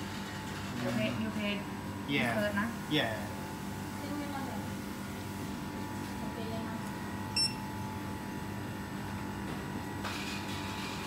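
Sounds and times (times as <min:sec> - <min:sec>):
short electronic beep: 0:07.4 - 0:07.6.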